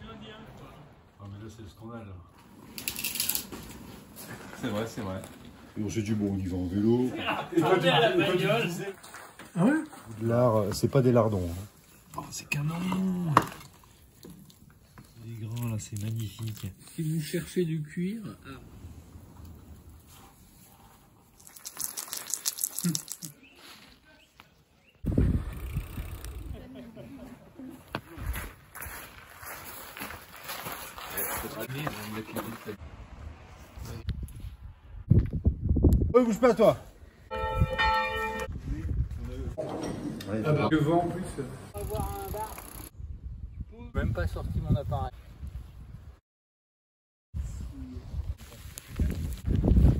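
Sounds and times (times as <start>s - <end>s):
church bell ringing: 37.3s - 38.5s.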